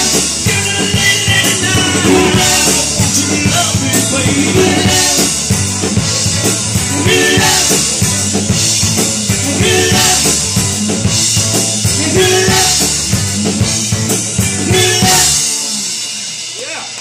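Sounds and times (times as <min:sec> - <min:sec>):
bass guitar: 0:00.0 - 0:17.0
drum kit with cymbal crashes: 0:00.0 - 0:17.0
electric guitars: 0:00.0 - 0:17.0.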